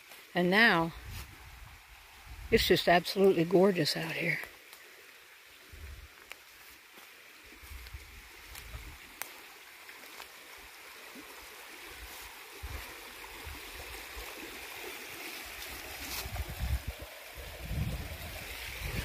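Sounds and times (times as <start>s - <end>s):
creek rushing and babbling: 0.0s - 19.0s.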